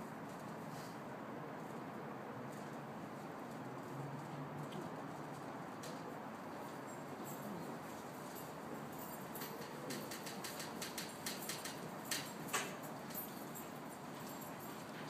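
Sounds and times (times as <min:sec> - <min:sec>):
steady background noise: 0:00.0 - 0:15.0.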